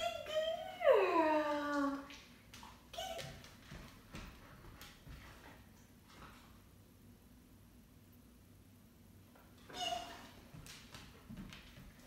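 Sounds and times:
dog whining: 9.7 - 10.5.

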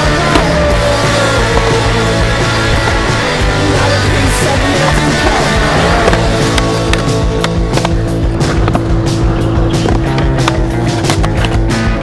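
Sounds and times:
loud backing music: 0.0 - 12.0
skateboard clacking: 0.0 - 12.0
skateboard wheels rolling on concrete: 0.0 - 12.0.

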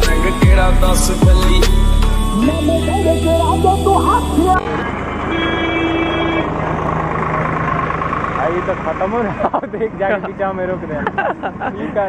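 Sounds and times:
rap music: 0.0 - 4.8
motorcycles running: 0.0 - 12.0.

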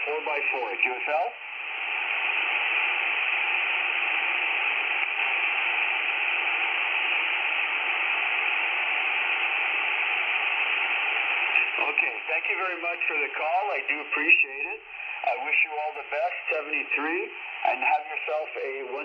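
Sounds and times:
voice over radio: 0.0 - 1.4, 11.4 - 19.0
shortwave radio static hiss: 0.0 - 19.0.

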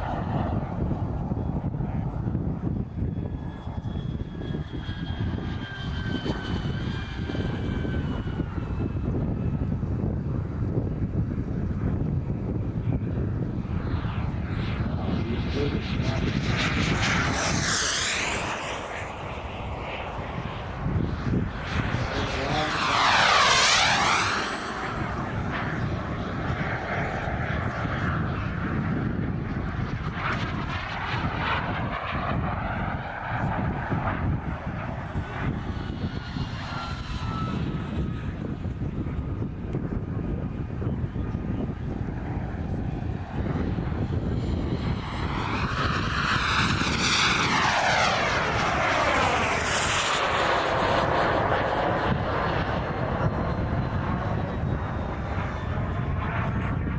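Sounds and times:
model jet turbine passing: 0.0 - 56.9.

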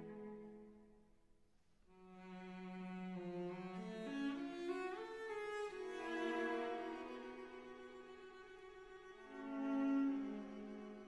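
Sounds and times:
orchestra bowed strings: 0.0 - 1.0, 1.9 - 11.0.

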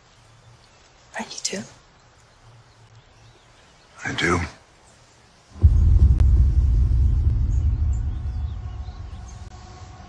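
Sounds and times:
deep low rumble hit: 5.6 - 10.0.

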